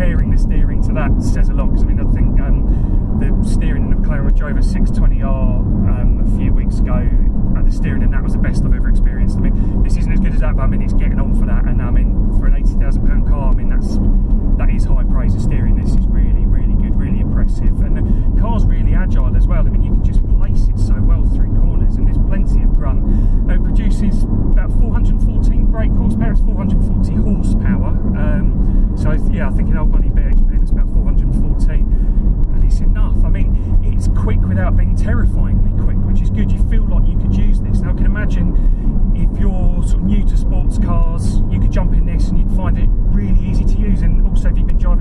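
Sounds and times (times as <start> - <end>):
car engine and road noise: 0.0 - 45.0
man talking: 0.0 - 45.0.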